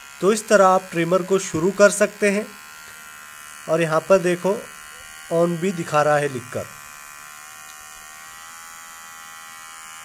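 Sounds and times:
electric hair trimmer buzzing: 0:00.0 - 0:10.0.

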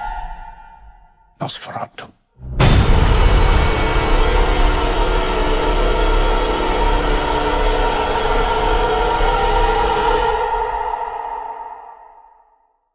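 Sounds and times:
dissonant drone: 0:03.0 - 0:10.5.

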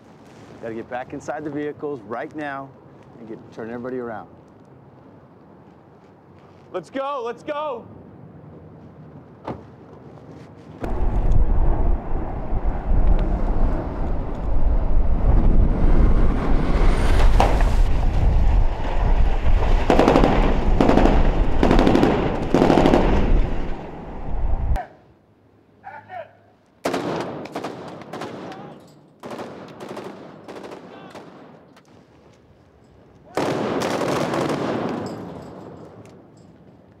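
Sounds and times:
heavy low rumble: 0:10.8 - 0:24.8.

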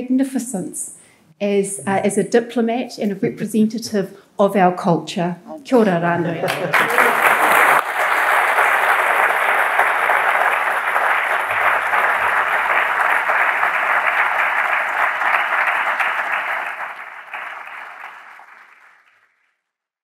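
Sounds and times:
audience applauding: 0:06.4 - 0:19.4.

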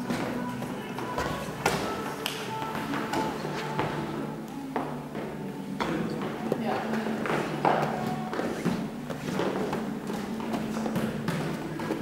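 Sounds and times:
balls slapping hands: 0:00.0 - 0:04.7
music playing: 0:00.0 - 0:12.0.

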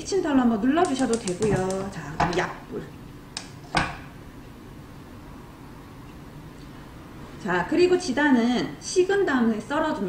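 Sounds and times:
frying pan knocking on stove grate: 0:00.8 - 0:02.5.

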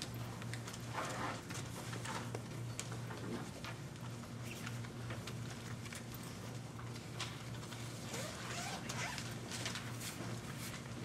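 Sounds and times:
faint rustles and clicks: 0:00.0 - 0:11.0.

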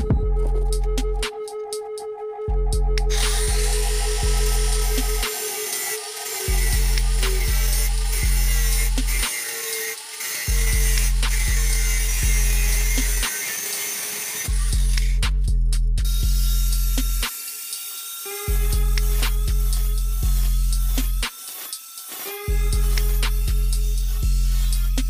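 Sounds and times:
music with heavy beat: 0:00.0 - 0:02.0, 0:02.6 - 0:09.3, 0:14.5 - 0:17.4, 0:18.4 - 0:21.4, 0:22.3 - 0:25.0
angle grinder grinding wood: 0:03.0 - 0:15.2, 0:16.1 - 0:25.0.

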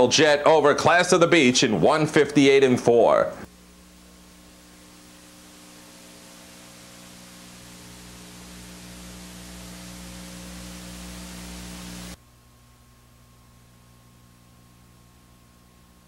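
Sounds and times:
electrical hum: 0:00.0 - 0:16.0
steady hiss: 0:00.0 - 0:16.0.

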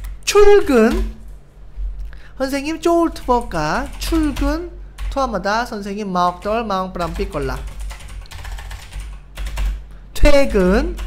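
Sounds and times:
typing on computer keyboard: 0:03.8 - 0:05.2, 0:06.3 - 0:09.8.

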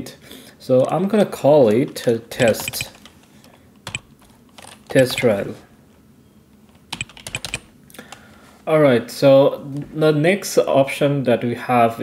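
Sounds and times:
keyboard keystrokes: 0:02.4 - 0:03.1, 0:03.8 - 0:05.4, 0:06.9 - 0:07.7.

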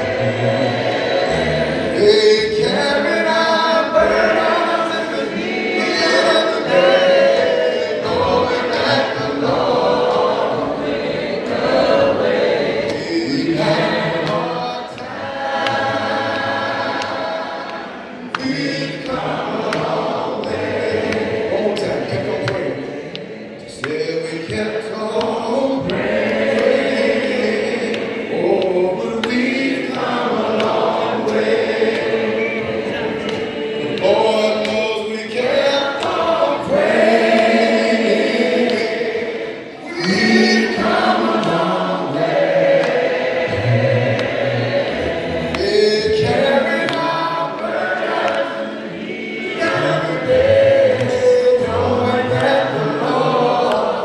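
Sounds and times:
group singing a hymn: 0:00.0 - 0:54.0.

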